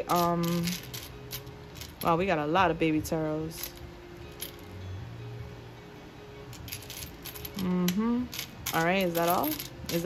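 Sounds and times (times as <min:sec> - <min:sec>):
metal charms clinking: 0:00.0 - 0:02.4, 0:06.5 - 0:10.0
quiet background music: 0:00.0 - 0:10.0.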